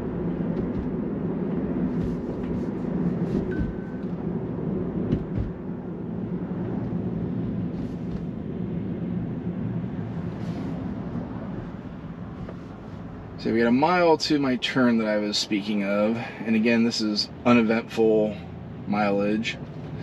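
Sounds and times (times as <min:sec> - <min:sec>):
road and tyre rumble: 0:00.0 - 0:20.0
high beep: 0:03.5 - 0:04.1
light thumps: 0:05.0 - 0:05.6.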